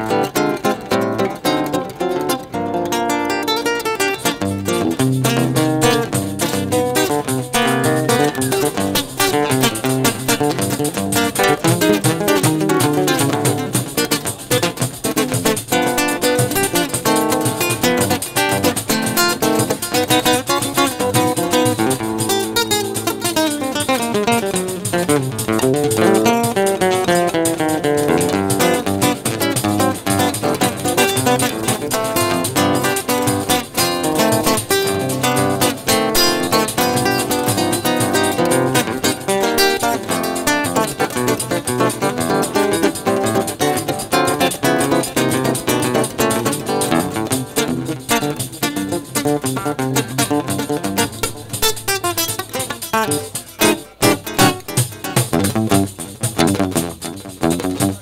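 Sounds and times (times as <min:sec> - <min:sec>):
acoustic guitar playing: 0:00.0 - 0:58.0
tambourine hand strikes: 0:04.0 - 0:58.0.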